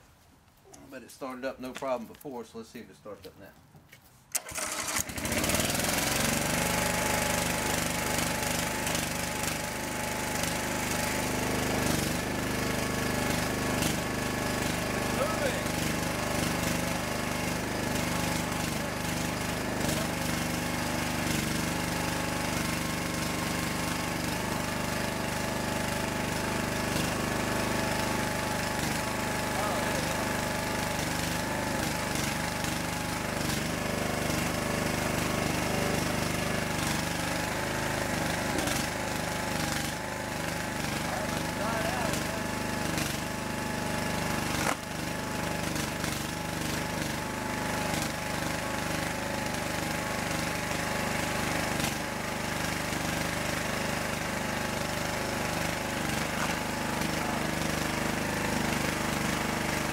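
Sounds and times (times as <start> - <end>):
small gasoline engine starting and running: 4.3 - 59.9.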